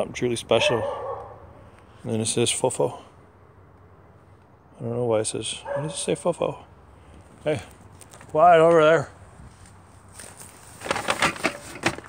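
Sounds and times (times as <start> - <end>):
plastic bags rustling and clicking: 10.2 - 12.0.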